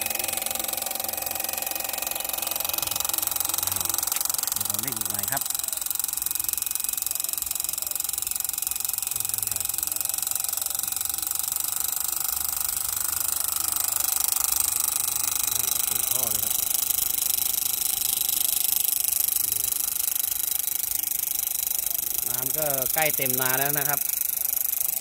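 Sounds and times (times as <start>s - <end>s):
small motor whining: 0.0s - 25.0s.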